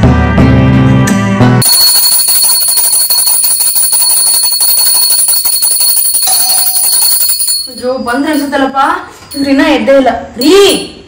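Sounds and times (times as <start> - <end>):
background music: 0.0 - 1.6
brass hand bell ringing: 1.6 - 8.6.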